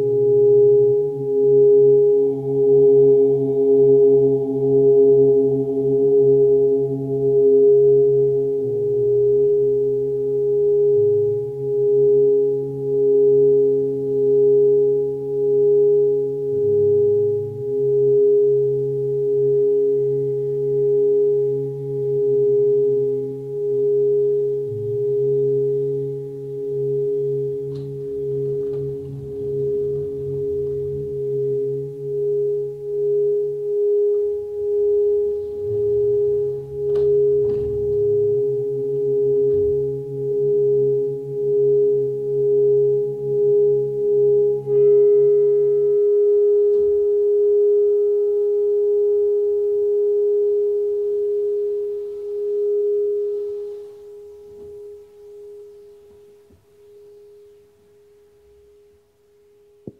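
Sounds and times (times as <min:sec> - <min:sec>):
singing bowl ringing: 0:00.0 - 0:58.9
low humming tones: 0:00.0 - 0:59.9.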